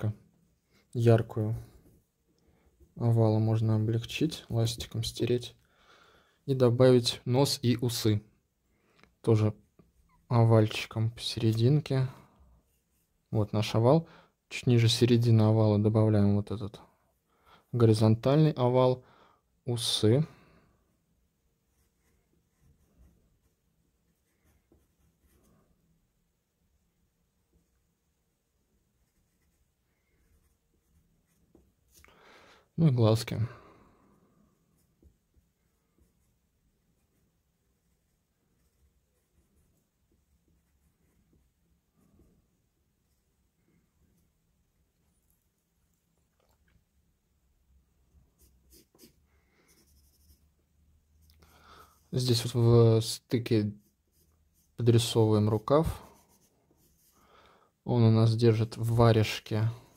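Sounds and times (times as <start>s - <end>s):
pencil scratching on paper: 21.4s - 26.1s, 28.8s - 32.0s, 34.5s - 43.4s, 48.2s - 57.2s.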